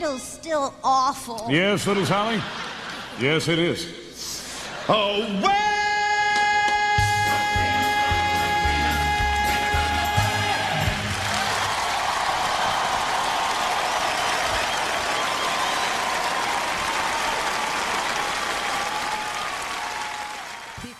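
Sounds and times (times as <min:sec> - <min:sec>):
audience applauding: 0:09.0 - 0:20.9.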